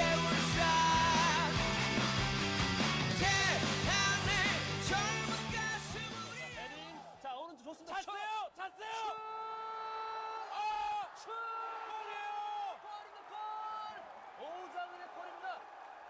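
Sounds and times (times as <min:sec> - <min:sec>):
faint stadium crowd: 0:00.0 - 0:16.0
commentator shouting excitedly: 0:03.3 - 0:15.6.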